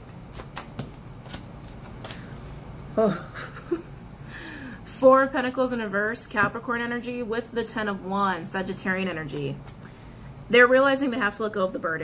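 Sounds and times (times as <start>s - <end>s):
cards being shuffled: 0.1s - 2.4s.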